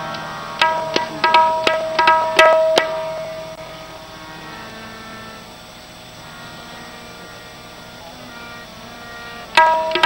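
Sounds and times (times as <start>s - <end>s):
harmonium sustained chord: 0.0s - 10.0s.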